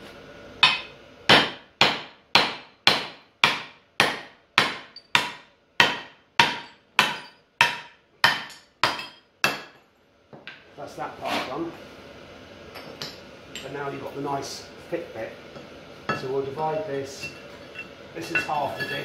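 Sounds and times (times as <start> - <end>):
hammer beating metal disc: 0.6 - 9.7.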